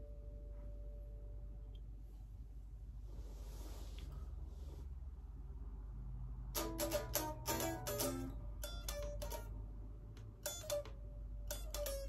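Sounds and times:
electric guitar picked notes: 0:06.6 - 0:09.6, 0:10.4 - 0:12.0.

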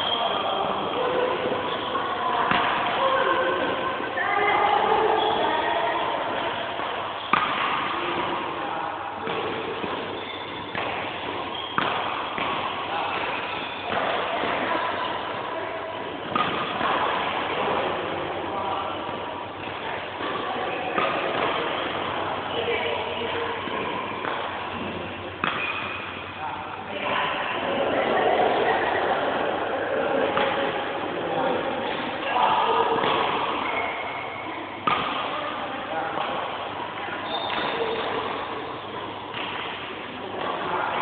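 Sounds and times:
racket striking shuttlecock: 0:01.4 - 0:03.0, 0:06.2 - 0:08.6, 0:09.2 - 0:15.5, 0:16.2 - 0:18.2, 0:19.6 - 0:22.2, 0:22.8 - 0:26.3, 0:32.8 - 0:33.8, 0:34.8 - 0:35.5, 0:36.2 - 0:41.0.

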